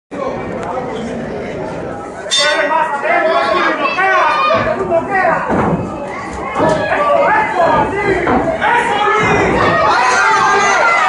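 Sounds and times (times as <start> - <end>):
spectators chattering: 0.1 - 11.0.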